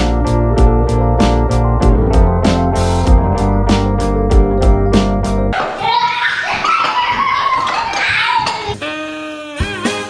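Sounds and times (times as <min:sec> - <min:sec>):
music: 0:00.0 - 0:05.6, 0:08.4 - 0:10.0.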